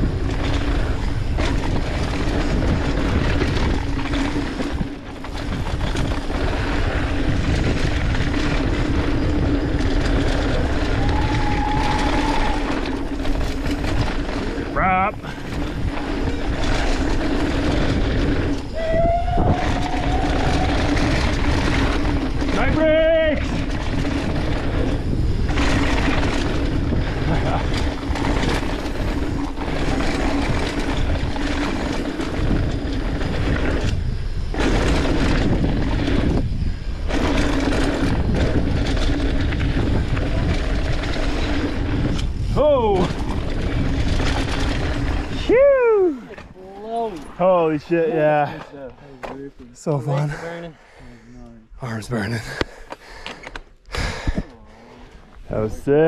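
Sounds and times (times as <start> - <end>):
wind rush on microphone: 0.0 - 48.6, 53.4 - 56.0
tyres on packed dirt: 0.0 - 51.2, 51.8 - 56.0
short pitched squeals: 18.6 - 21.0.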